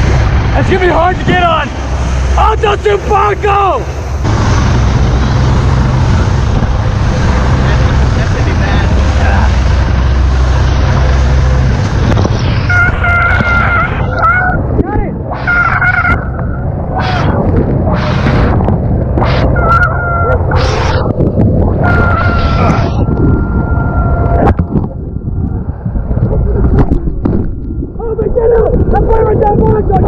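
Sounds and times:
rushing water and spray: 0:00.0 - 0:24.8
waves breaking: 0:00.0 - 0:29.4
boat engines running: 0:00.0 - 0:30.0
wind buffeting microphone: 0:00.0 - 0:30.0
short high honk: 0:19.2 - 0:21.0, 0:21.8 - 0:24.5.

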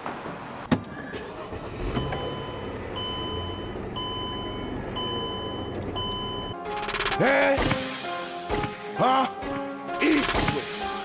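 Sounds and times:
car engine starting and idling: 0:00.6 - 0:06.9
dashboard warning chime beeping: 0:01.9 - 0:06.6.

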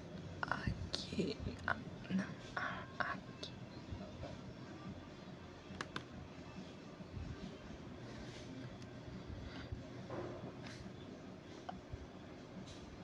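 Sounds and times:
person whispering: 0:00.4 - 0:03.6.

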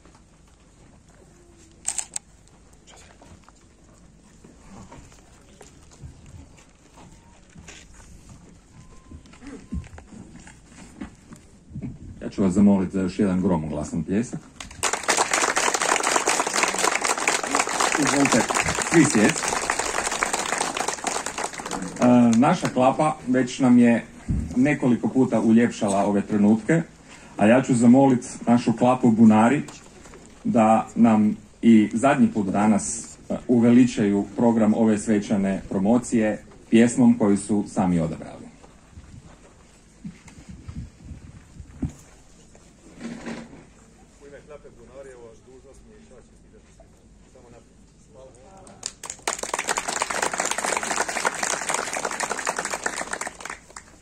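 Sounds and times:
faint voices talking quietly: 0:02.7 - 0:10.2
audience applauding: 0:14.6 - 0:22.7, 0:48.8 - 0:54.0.

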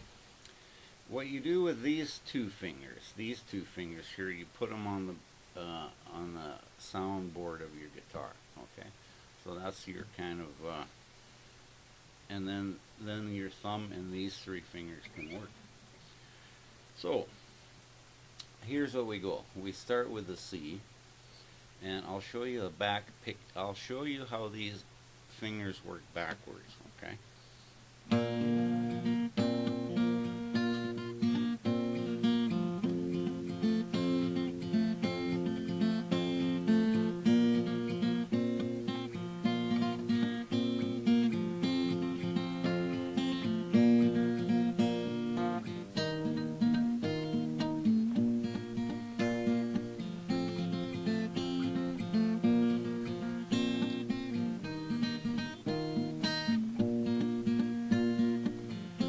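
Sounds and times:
fingerpicked acoustic guitar: 0:13.7 - 0:15.7, 0:27.4 - 0:59.0.

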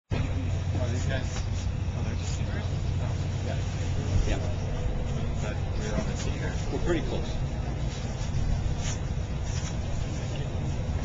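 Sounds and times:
steady low rumble: 0:00.1 - 0:11.0.

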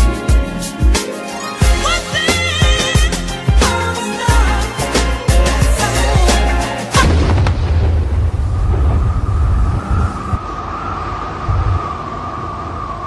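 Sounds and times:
loud boom with low rumble: 0:07.0 - 0:10.5.

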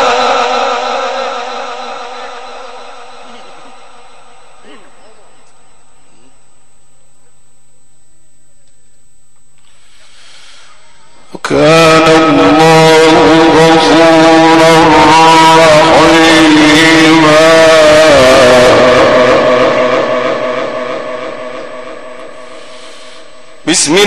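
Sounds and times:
man chanting recitation: 0:00.0 - 0:03.9, 0:11.2 - 0:21.8, 0:23.6 - 0:24.0.

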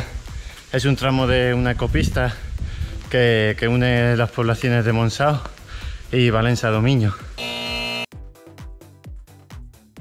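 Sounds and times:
electronic music with kick drum: 0:06.5 - 0:10.0
electronic buzzer tone: 0:07.4 - 0:08.1.

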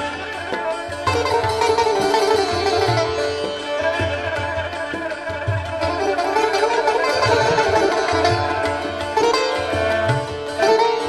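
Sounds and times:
low tabla strokes: 0:00.0 - 0:11.0
sitar melody with bent notes: 0:00.0 - 0:11.0.

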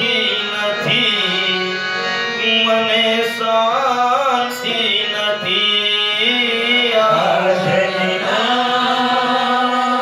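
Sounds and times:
musical accompaniment: 0:00.0 - 0:10.0
man singing a long note: 0:02.4 - 0:10.0.

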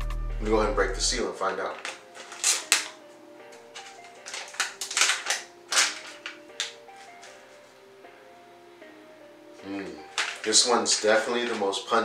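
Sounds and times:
soft background music: 0:00.0 - 0:12.0
foil pouch crinkling and tearing: 0:01.5 - 0:07.6, 0:09.8 - 0:12.0.

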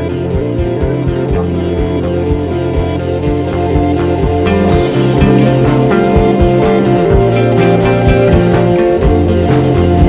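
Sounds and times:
bass line: 0:00.0 - 0:10.0
drum beat: 0:00.0 - 0:10.0
electric guitar: 0:00.0 - 0:10.0.

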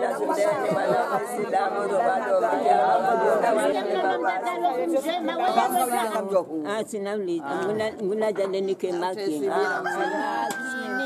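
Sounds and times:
rooster crowing: 0:09.6 - 0:11.0.

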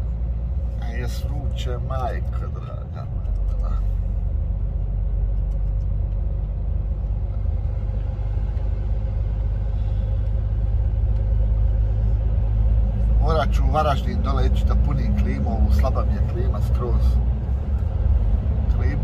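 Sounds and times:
truck engine and road rumble: 0:00.0 - 0:19.0.

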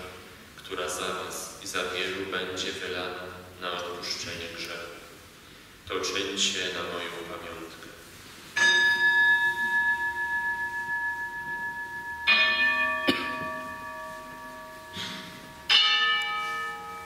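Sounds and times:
altar bell ringing: 0:08.6 - 0:17.0.

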